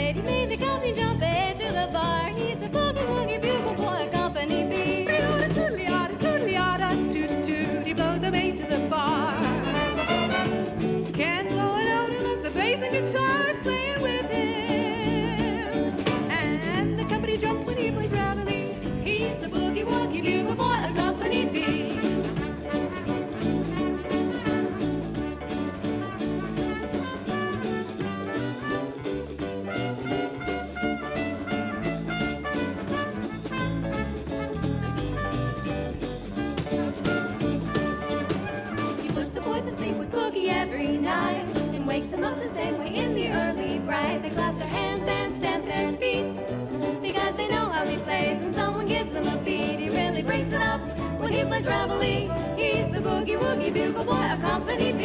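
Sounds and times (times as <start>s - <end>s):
swing big band playing: 0.0s - 55.0s
people singing: 2.4s - 22.5s, 39.0s - 55.0s
trumpet solo: 9.3s - 11.0s, 21.6s - 39.2s.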